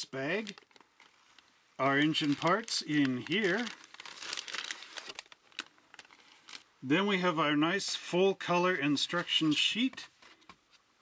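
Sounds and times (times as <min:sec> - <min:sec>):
plastic bags crinkling: 0:00.0 - 0:06.8.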